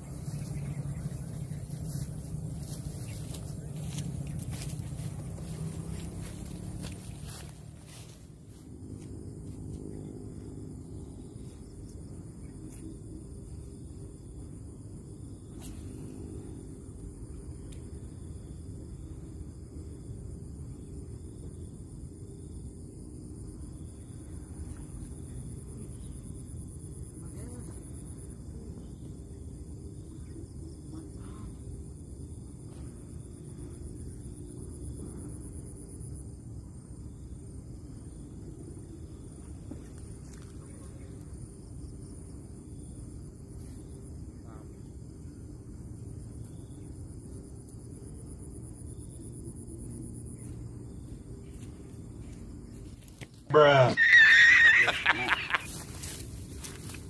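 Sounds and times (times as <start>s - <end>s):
low rumble: 0.0s - 12.4s
high-pitched insect drone: 0.0s - 57.0s.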